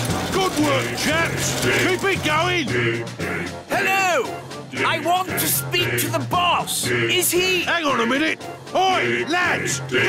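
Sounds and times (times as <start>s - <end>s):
background music with bass: 0.0s - 10.0s
voices singing a work chant: 0.4s - 10.0s.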